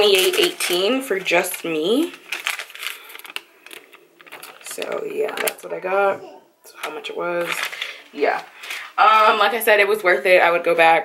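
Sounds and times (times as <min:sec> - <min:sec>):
paper receipt rustling: 0:00.0 - 0:05.7, 0:07.0 - 0:09.6.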